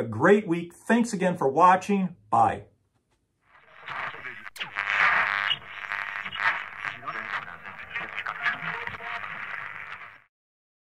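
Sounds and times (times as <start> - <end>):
tinny radio music: 3.4 - 10.3
person talking on tinny radio: 3.7 - 10.2.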